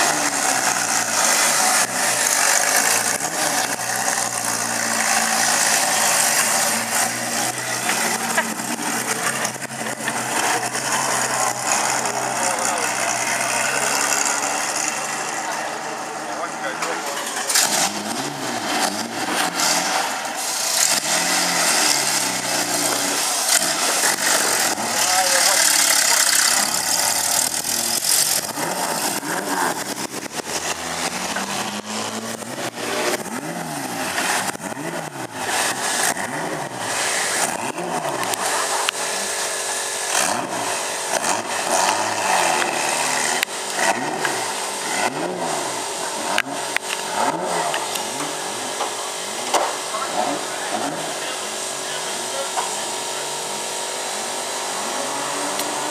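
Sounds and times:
car engine idling and revving: 0:00.0 - 0:55.9.

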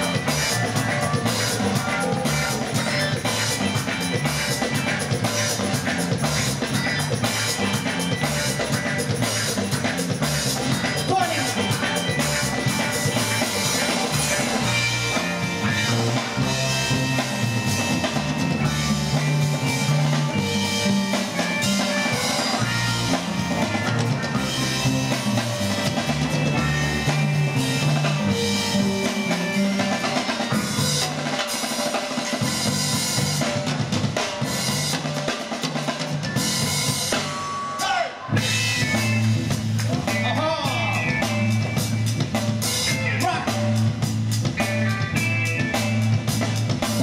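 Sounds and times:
drum kit groove: 0:00.0 - 0:47.0
live band music: 0:00.0 - 0:47.0.

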